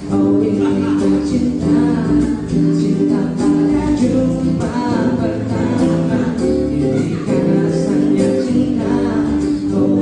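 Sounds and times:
acoustic guitar: 0.0s - 10.0s
bass: 0.0s - 10.0s
man singing: 0.0s - 10.0s.

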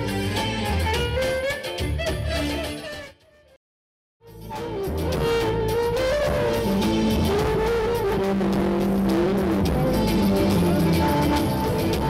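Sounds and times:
loud music with sliding lead melody: 0.0s - 3.3s, 4.2s - 12.0s.

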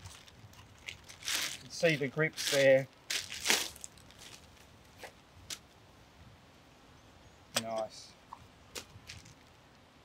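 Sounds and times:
plastic packaging rustling: 0.0s - 4.6s.

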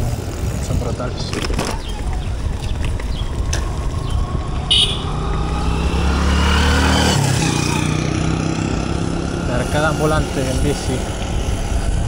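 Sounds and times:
wind rumbling on microphone: 0.0s - 12.0s
vehicle engine drone: 1.8s - 12.0s.

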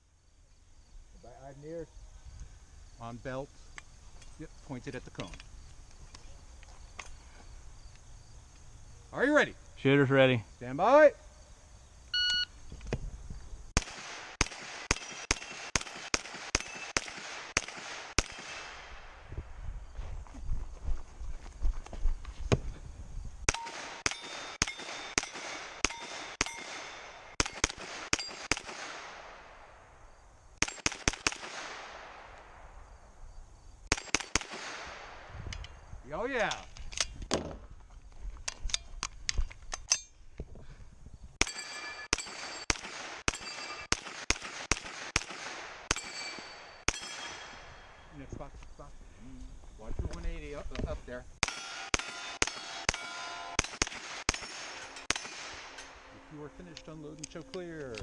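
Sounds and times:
carbine gunshots: 13.8s - 19.3s, 23.5s - 29.8s, 30.6s - 32.4s, 33.9s - 35.3s, 41.4s - 48.0s, 51.4s - 56.1s
bullets ringing on steel target: 23.5s - 28.5s, 41.4s - 44.0s, 45.9s - 47.7s, 51.4s - 56.0s.

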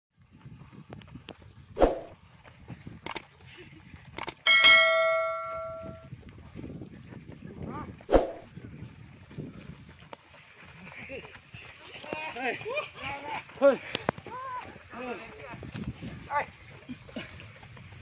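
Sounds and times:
footsteps running on gravel: 0.2s - 18.0s
metallic clang: 4.5s - 6.0s.

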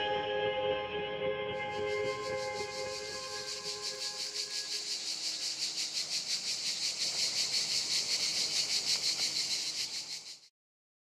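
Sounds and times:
crickets chirping: 1.6s - 10.5s.

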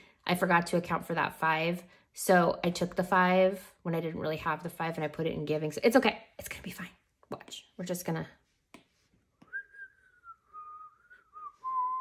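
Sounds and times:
person whistling a tune: 9.4s - 12.0s.

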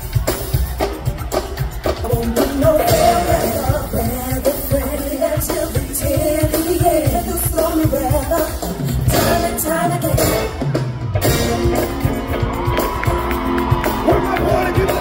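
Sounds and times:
live band playing: 0.0s - 15.0s
voices singing: 1.9s - 10.6s.

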